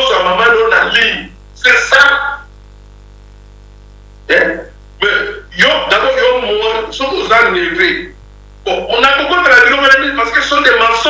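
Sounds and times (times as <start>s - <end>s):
man talking: 0.0s - 2.5s, 4.3s - 11.0s
low electrical hum: 0.0s - 11.0s.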